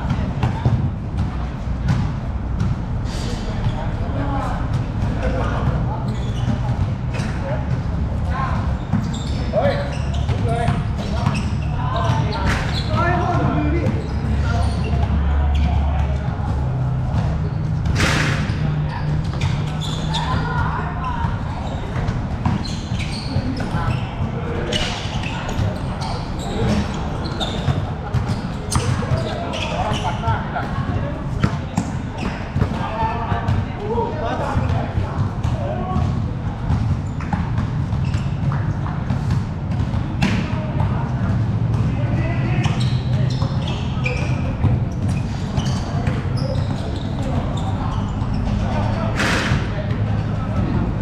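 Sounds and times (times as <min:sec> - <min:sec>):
basketballs bouncing on hard court: 0:00.0 - 0:02.9, 0:03.6 - 0:51.0
players calling out and chattering: 0:00.0 - 0:51.0
voices: 0:00.0 - 0:51.0
basketball bouncing on hard court: 0:34.6 - 0:40.6.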